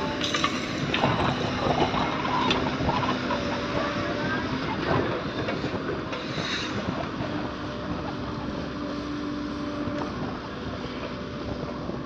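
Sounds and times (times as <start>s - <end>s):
excavator diesel engine running: 0.0s - 12.0s.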